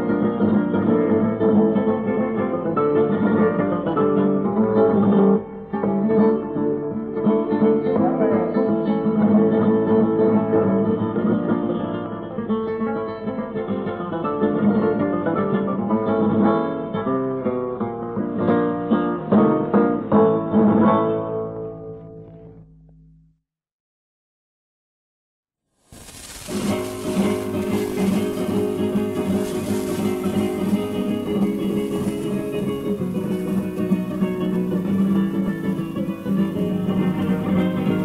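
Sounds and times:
flamenco acoustic guitar: 0.0s - 23.1s, 26.2s - 38.0s.

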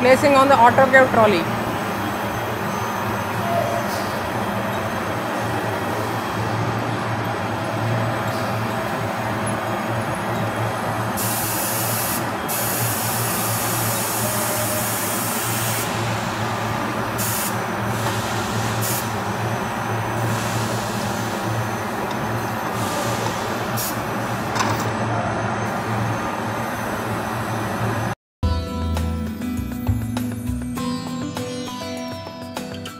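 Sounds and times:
factory machinery hum: 0.0s - 28.2s
compressed air hissing: 11.2s - 16.4s, 17.1s - 19.2s, 22.7s - 24.3s.

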